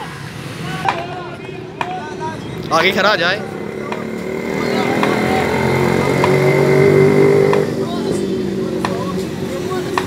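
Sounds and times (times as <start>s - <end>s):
motor vehicle engine running: 2.6s - 10.0s.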